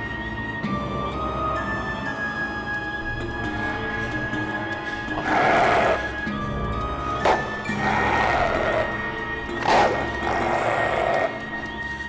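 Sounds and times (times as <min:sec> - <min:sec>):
suspenseful background music: 0:00.0 - 0:12.0.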